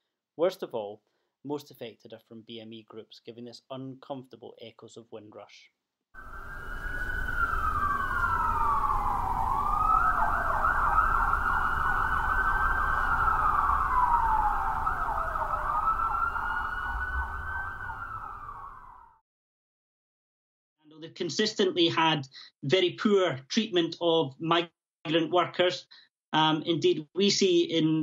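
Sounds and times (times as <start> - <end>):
emergency sirens wailing: 6.2 - 19.2.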